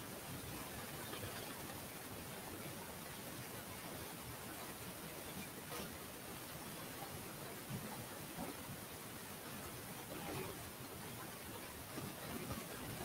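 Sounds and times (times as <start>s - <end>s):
low static hiss: 0.0s - 13.0s.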